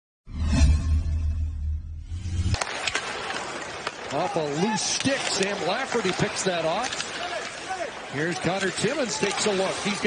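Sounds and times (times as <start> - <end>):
low bass sound effect: 0.3 - 2.6
hockey sticks clicking on puck: 2.5 - 10.0
skates scraping ice: 2.5 - 10.0
arena crowd noise: 2.6 - 10.0.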